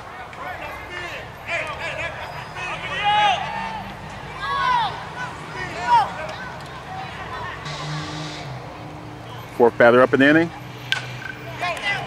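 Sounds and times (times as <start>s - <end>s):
high-pitched shouted calls: 0.7s - 9.5s.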